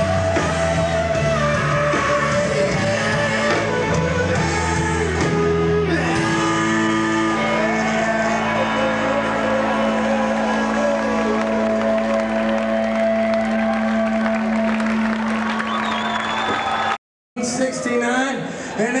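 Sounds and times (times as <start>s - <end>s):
audience cheering and applauding: 0.0s - 17.0s.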